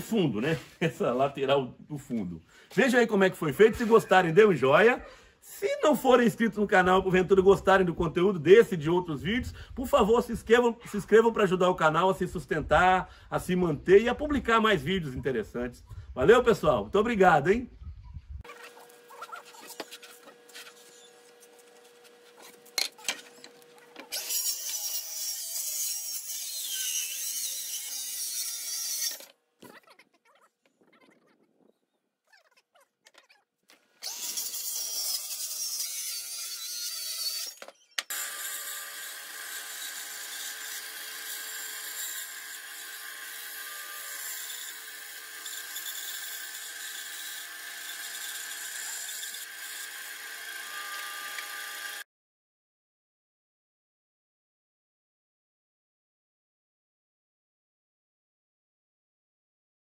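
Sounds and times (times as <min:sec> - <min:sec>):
jigsaw cutting wood: 0:18.5 - 0:29.3, 0:34.0 - 0:52.1.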